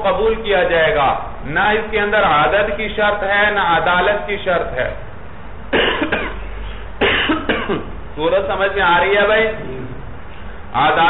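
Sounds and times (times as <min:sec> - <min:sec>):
low steady hum: 0:00.0 - 0:11.0
person coughing: 0:05.7 - 0:08.0.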